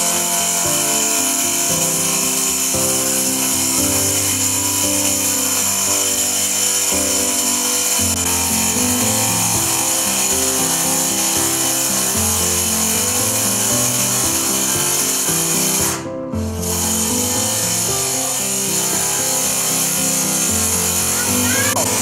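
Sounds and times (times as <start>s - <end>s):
electric tile saw cutting: 0.0s - 22.0s
background music with bass: 21.1s - 22.0s.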